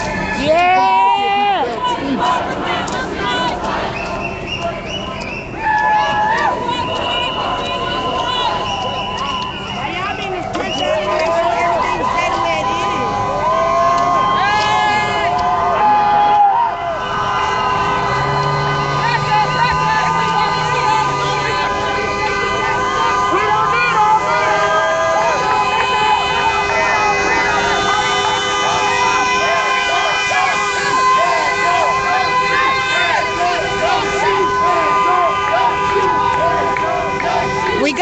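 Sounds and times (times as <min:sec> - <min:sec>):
street crowd voices: 0:00.0 - 0:38.0
vehicle horns blasting: 0:05.9 - 0:13.5, 0:14.2 - 0:38.0.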